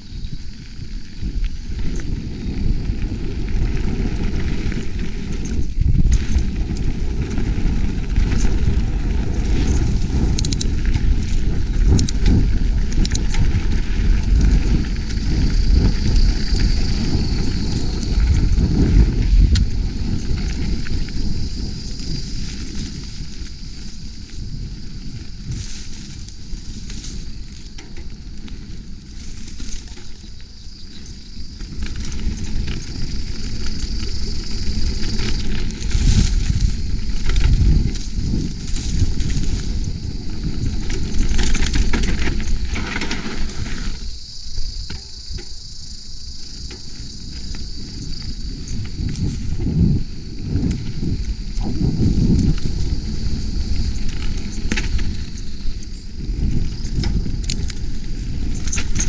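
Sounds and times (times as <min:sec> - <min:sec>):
bike tyres rumbling over dirt: 0:00.0 - 0:59.0
wind buffeting camera: 0:00.0 - 0:59.0.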